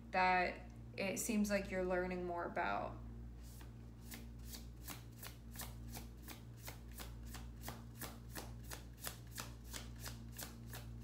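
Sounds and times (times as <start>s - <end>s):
low steady hum: 0.0s - 11.0s
cards being shuffled: 3.4s - 11.0s.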